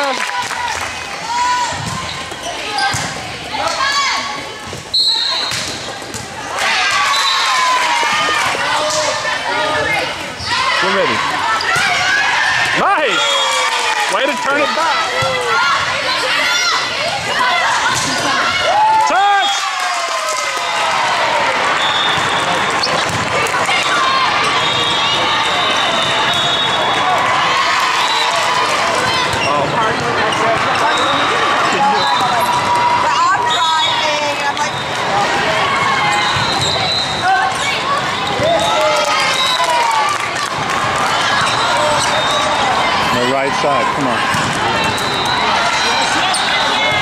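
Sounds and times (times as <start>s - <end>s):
people shouting: 6.5s - 22.7s, 23.3s - 29.5s
sneaker squeaks on hardwood: 22.8s - 23.2s.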